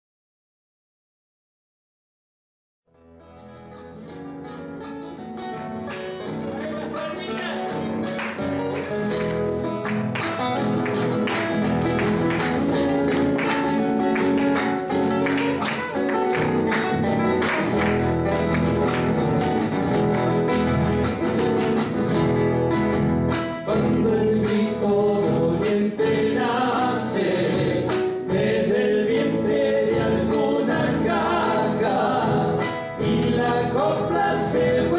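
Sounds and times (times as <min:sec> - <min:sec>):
acoustic guitars playing: 0:02.9 - 0:34.9
men singing in harmony: 0:23.7 - 0:34.9.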